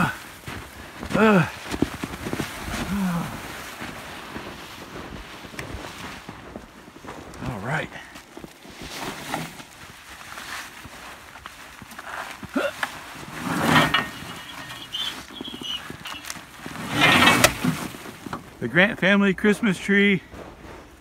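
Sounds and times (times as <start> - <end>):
man grunting: 1.1 - 1.5, 2.9 - 3.4
tree branches rustling and scraping: 1.6 - 20.2.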